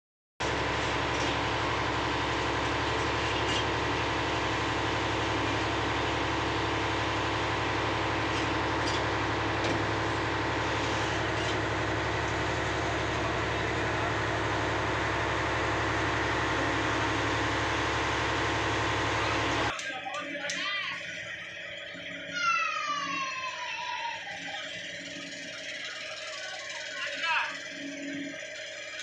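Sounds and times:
engine droning: 0.4 - 29.0.

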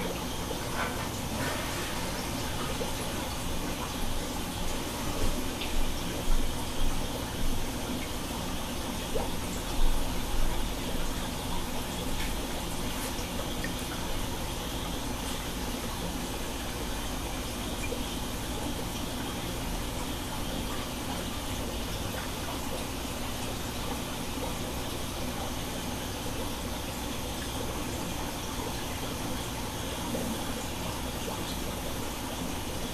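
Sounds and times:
running water rushing: 0.0 - 26.0.

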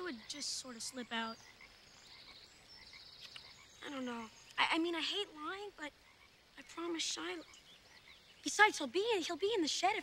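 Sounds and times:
frogs calling: 0.0 - 10.0.

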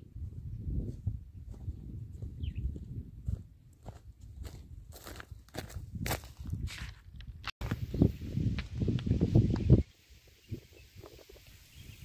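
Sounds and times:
footsteps on dry field soil: 0.0 - 9.8
wind rumble: 0.0 - 12.0.

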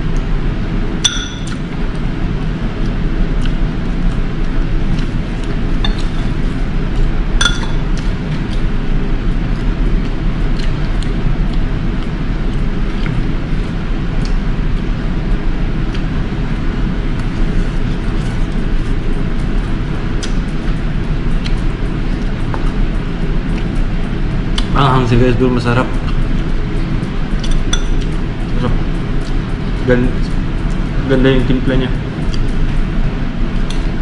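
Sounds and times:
steady low hum: 0.0 - 34.0
cutlery clinking against bowl: 7.4 - 7.8, 27.4 - 28.2.

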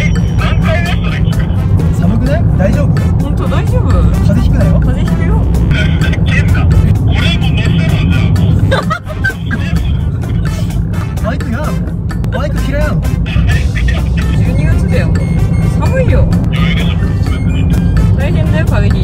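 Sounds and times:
car engine rumbling: 0.0 - 19.0
music: 0.0 - 19.0
people talking: 0.0 - 19.0.

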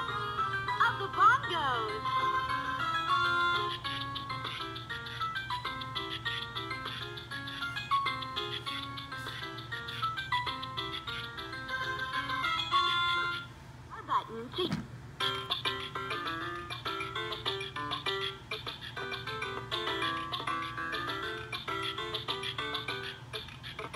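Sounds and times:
toy playing electronic salsa song: 0.0 - 13.5, 15.2 - 23.9.

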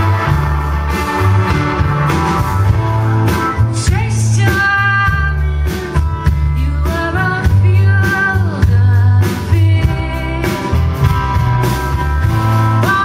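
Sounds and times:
live rock band playing: 0.0 - 13.0
woman singing: 3.8 - 10.9, 12.8 - 13.0.

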